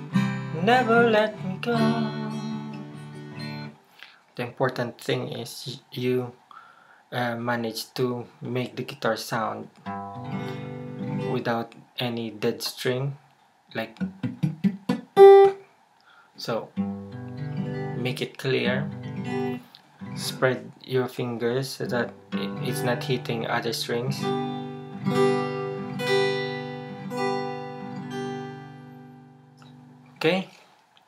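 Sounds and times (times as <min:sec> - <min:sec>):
acoustic guitar strings picked: 0:00.0 - 0:03.8, 0:13.9 - 0:15.6, 0:21.9 - 0:30.5.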